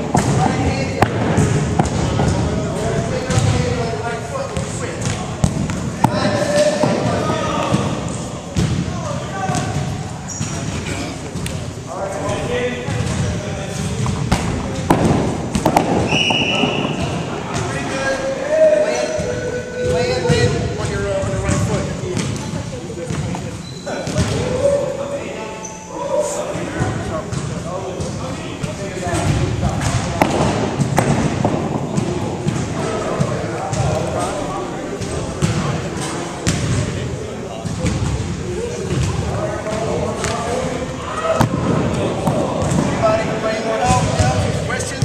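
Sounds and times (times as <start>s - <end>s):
balls bouncing on hardwood floor: 0.0s - 3.7s, 12.9s - 17.7s, 26.8s - 34.0s, 41.4s - 43.0s
indistinct chatter: 0.0s - 45.0s.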